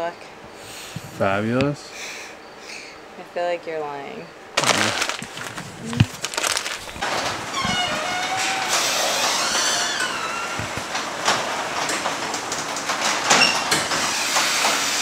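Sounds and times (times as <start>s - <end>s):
garage door rollers rattling: 4.6s - 15.0s
garage door squealing: 7.0s - 15.0s.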